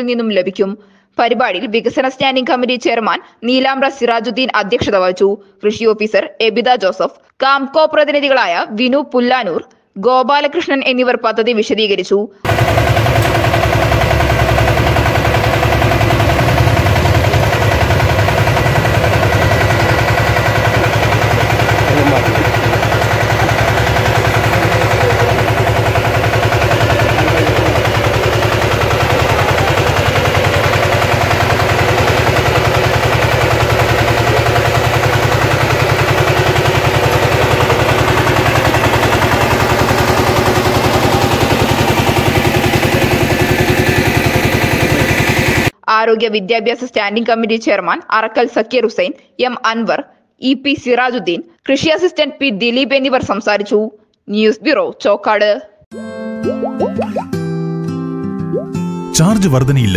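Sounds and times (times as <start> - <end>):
power tiller engine running: 12.5 - 45.8.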